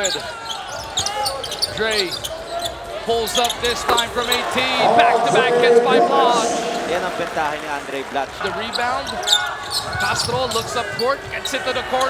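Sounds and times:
crowd noise: 0.0s - 12.0s
person calling out: 4.8s - 7.2s.

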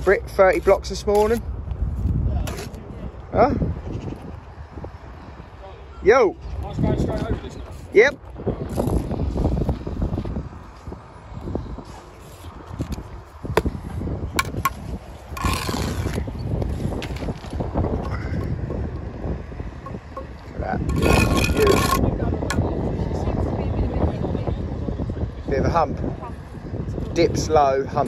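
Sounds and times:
wind rumble on microphone: 0.0s - 28.0s
trowel scraping: 2.5s - 2.8s, 14.4s - 18.6s, 19.9s - 22.6s
trowel tapping concrete block: 14.4s - 14.8s, 19.9s - 22.6s.

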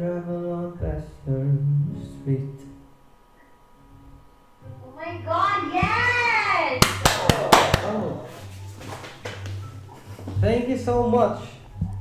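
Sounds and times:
quick hand claps: 6.8s - 9.6s.

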